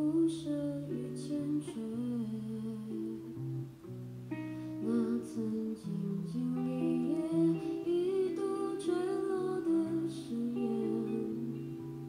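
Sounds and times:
soft female voice singing: 0:00.0 - 0:03.6, 0:04.4 - 0:12.0
acoustic guitar: 0:00.0 - 0:12.0.

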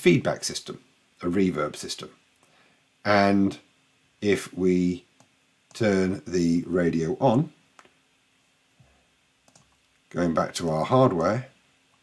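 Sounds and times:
faint clicks: 0:05.2 - 0:05.8, 0:07.7 - 0:08.0, 0:09.4 - 0:10.1.

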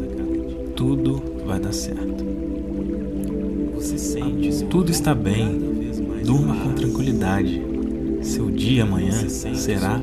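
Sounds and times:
man talking: 0:00.0 - 0:02.2, 0:03.7 - 0:10.0
calm ambient music: 0:00.0 - 0:10.0.

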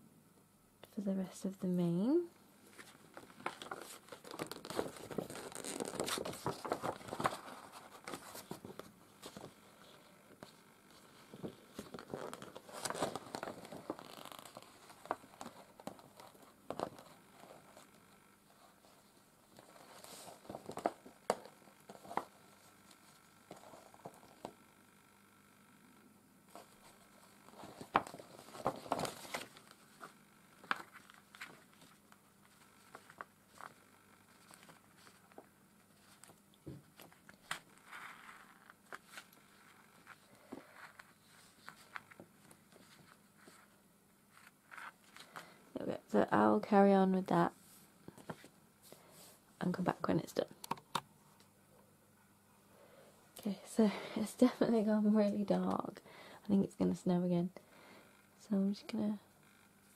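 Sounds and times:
rustling and crinkling materials: 0:02.6 - 0:24.6, 0:26.5 - 0:50.8.

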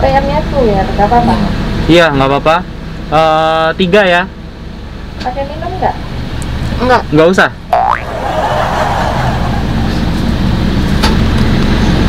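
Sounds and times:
car engine humming: 0:04.3 - 0:12.0.

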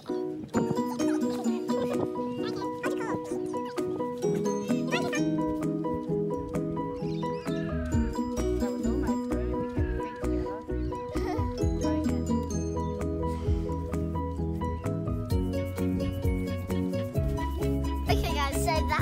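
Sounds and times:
music with steady beat: 0:00.5 - 0:07.0, 0:07.8 - 0:19.0
deep bass line: 0:05.0 - 0:19.0.

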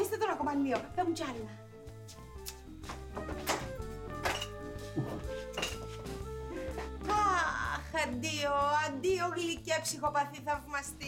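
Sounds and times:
background music with bass line: 0:01.6 - 0:09.4.

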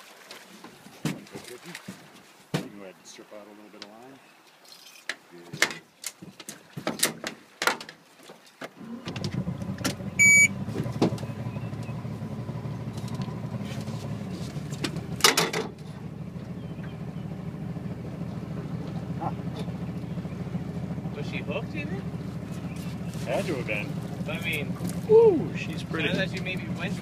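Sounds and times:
boat motor idling: 0:08.8 - 0:27.0
short electronic beep: 0:10.2 - 0:10.6.

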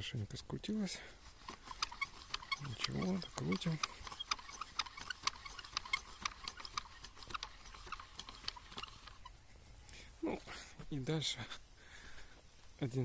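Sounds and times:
rope-twisting crank ticking: 0:01.0 - 0:09.3.

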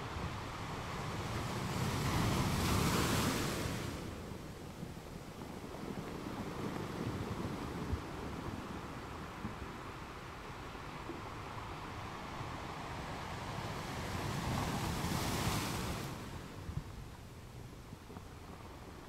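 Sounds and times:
wind buffeting microphone: 0:00.0 - 0:19.0
wind through foliage: 0:00.0 - 0:19.0.

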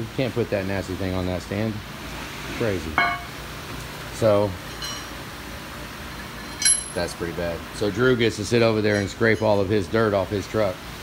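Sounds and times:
steady background hum: 0:00.0 - 0:11.0
sharp metallic clink: 0:06.4 - 0:07.0.

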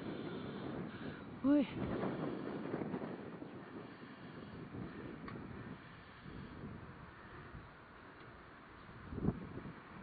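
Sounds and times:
wind buffeting microphone: 0:00.0 - 0:08.0, 0:08.6 - 0:10.0.

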